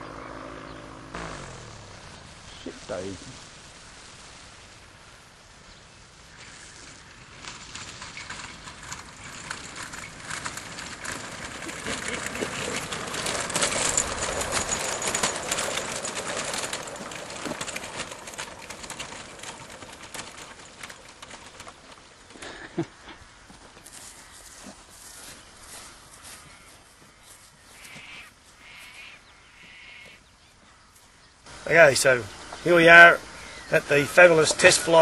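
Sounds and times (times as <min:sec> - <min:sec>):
faint high motor whine: 0:00.0 - 0:05.0
propeller rattling whoosh: 0:00.0 - 0:05.5, 0:06.2 - 0:23.0, 0:31.5 - 0:35.0.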